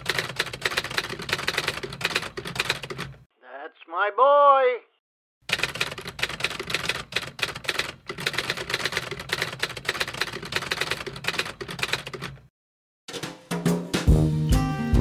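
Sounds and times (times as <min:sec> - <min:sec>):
keyboard typing clatter: 0:00.0 - 0:03.3, 0:05.5 - 0:12.5.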